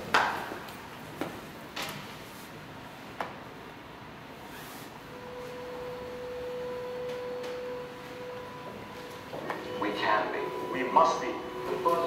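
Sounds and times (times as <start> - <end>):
electronic pure tone: 5.1 - 12.0.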